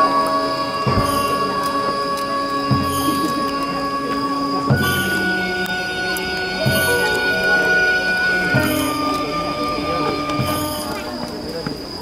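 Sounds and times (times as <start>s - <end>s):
drum stroke: 0.0s - 11.4s
bamboo flute high note: 0.0s - 11.6s.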